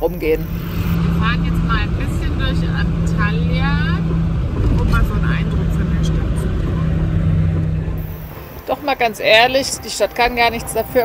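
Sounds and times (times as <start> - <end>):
truck diesel engine droning: 0.0 - 11.0.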